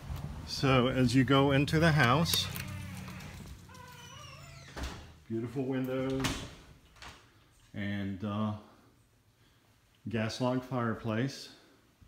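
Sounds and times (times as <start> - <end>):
door hinges creaking: 1.7 - 5.2.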